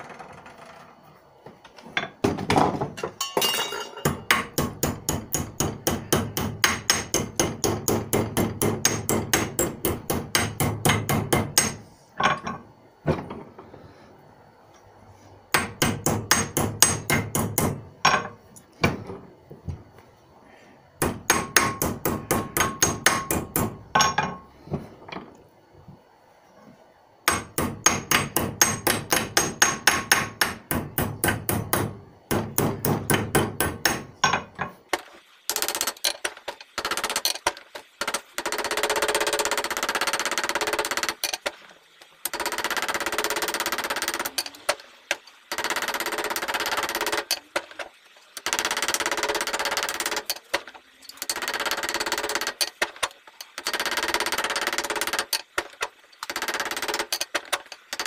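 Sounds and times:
hammer striking metal washer: 3.2s - 12.6s, 15.6s - 18.3s, 21.0s - 24.4s, 27.3s - 34.8s.

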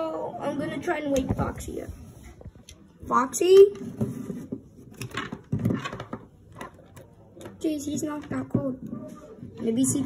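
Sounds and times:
plastic toys knocking and rubbing: 1.1s - 10.0s.

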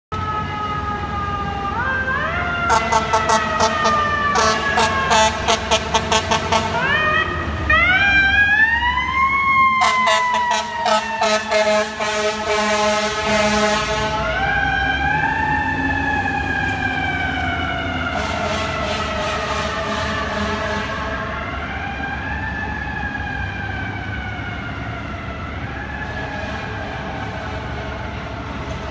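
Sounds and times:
fire engine siren wailing: 0.1s - 28.9s
air horn blasts: 2.7s - 6.8s, 9.8s - 14.4s, 18.1s - 21.0s.

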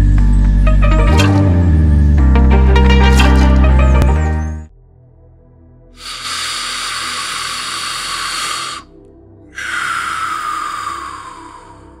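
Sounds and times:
soft ambient music: 0.0s - 12.0s
long breaths: 6.0s - 12.0s.

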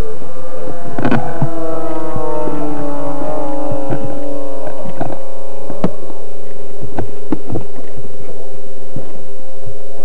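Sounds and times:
steady electrical hum: 0.0s - 10.0s.

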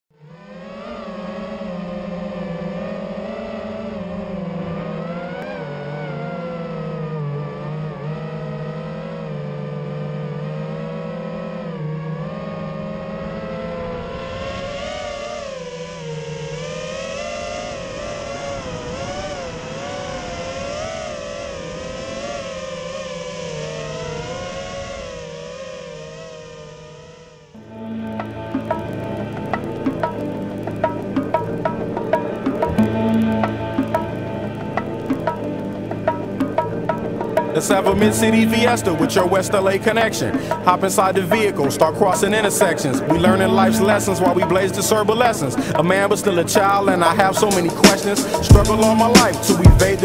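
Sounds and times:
quadcopter propellers whining: 0.1s - 50.0s.

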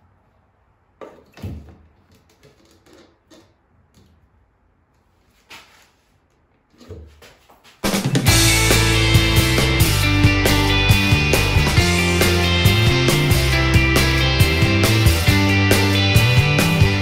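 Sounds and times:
loud rock music: 7.9s - 17.0s.

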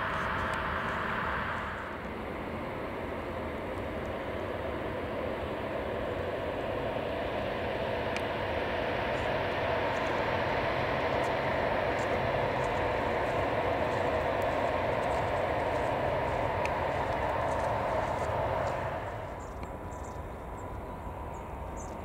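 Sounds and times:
jet engines rumbling and whining: 0.0s - 22.0s.

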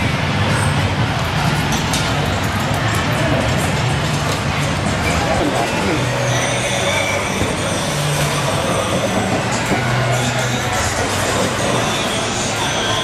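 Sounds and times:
bowling balls rolling: 6.5s - 13.0s.

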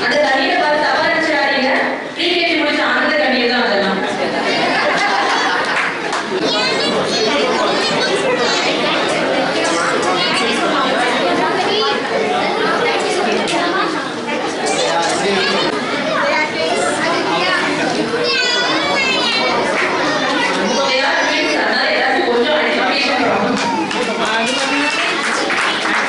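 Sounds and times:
crowd chattering: 0.0s - 26.0s
children calling out: 4.4s - 21.8s.

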